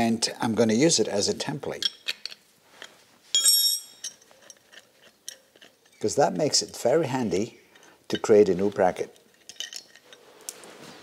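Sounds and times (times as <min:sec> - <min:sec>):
light metallic clinks: 0:03.3 - 0:06.9.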